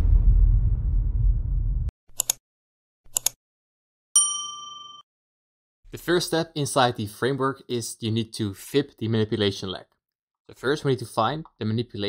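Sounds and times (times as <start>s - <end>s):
bright bell ding: 4.2s - 5.0s.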